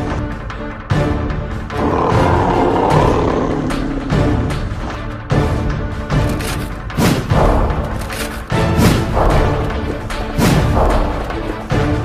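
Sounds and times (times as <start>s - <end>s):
dramatic background music: 0.0s - 12.0s
creature growling and snarling: 1.7s - 4.8s.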